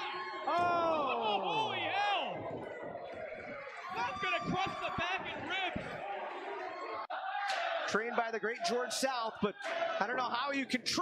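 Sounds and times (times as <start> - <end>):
raised voices: 0.0 - 11.0.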